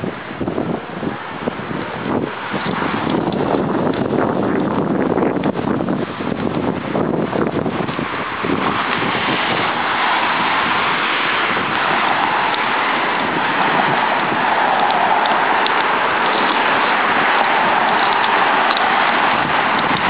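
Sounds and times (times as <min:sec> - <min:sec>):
street traffic: 0:00.0 - 0:20.0
wind buffeting microphone: 0:00.0 - 0:20.0.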